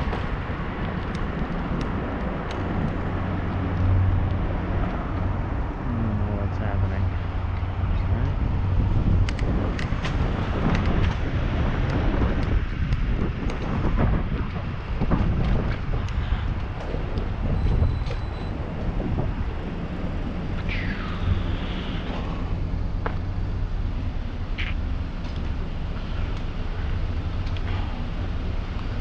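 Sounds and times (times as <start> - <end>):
road rumble: 0.0 - 29.0
steady low hum: 0.0 - 29.0
wind on microphone: 0.0 - 29.0.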